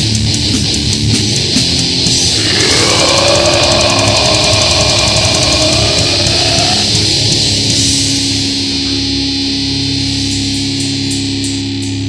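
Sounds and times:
heavy metal music: 0:00.0 - 0:12.0.

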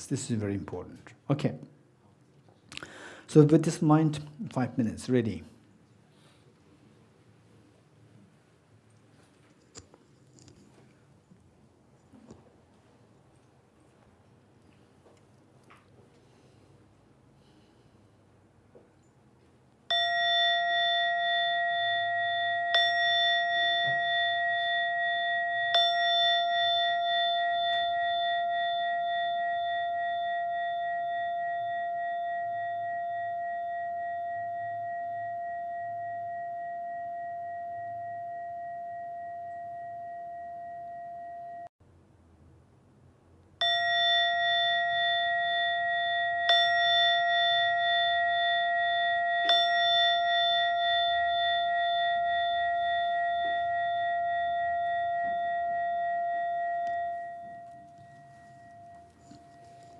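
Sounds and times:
meditation bell chime: 0:19.9 - 0:41.7, 0:43.6 - 0:59.9.

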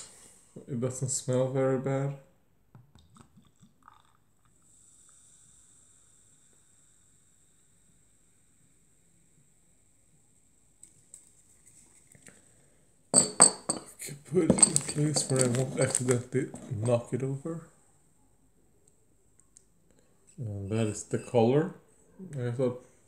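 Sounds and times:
fizzing drink pouring: 0:03.0 - 0:07.0
glass clinking set down: 0:13.2 - 0:17.0.

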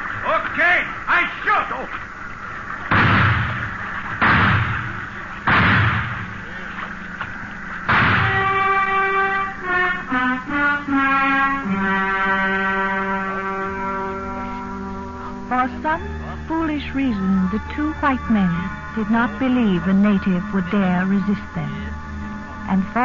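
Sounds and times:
gunshots with echo: 0:02.9 - 0:06.4, 0:07.9 - 0:08.6
music with held chords: 0:04.8 - 0:23.0.

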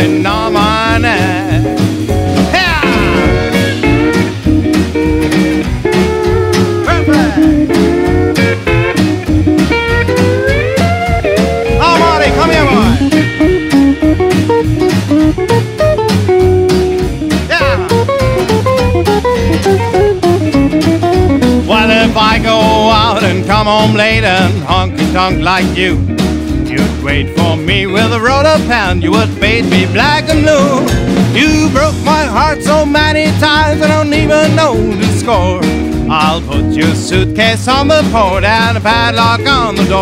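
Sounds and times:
rhythm guitar: 0:00.0 - 0:40.0
upright bass: 0:00.0 - 0:40.0
electric guitar solo: 0:02.2 - 0:22.2.

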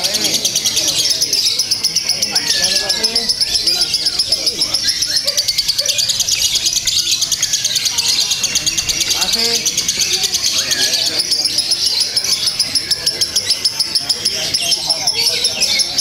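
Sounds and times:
faint voices: 0:00.0 - 0:16.0
lovebird chirping: 0:00.0 - 0:16.0.

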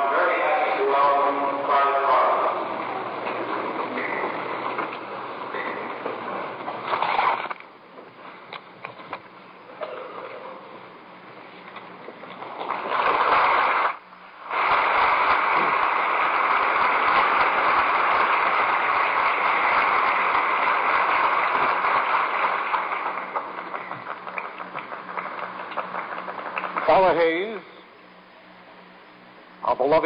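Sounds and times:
congregation applauding: 0:12.6 - 0:27.6.

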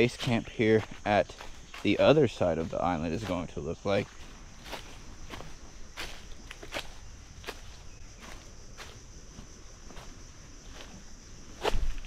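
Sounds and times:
footsteps on leaf-covered dirt trail: 0:00.0 - 0:12.0
outdoor background: 0:00.0 - 0:12.0.

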